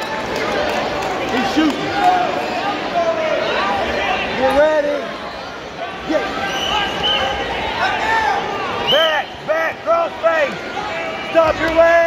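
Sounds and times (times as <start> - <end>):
people shouting in gymnasium: 5.2 - 12.0.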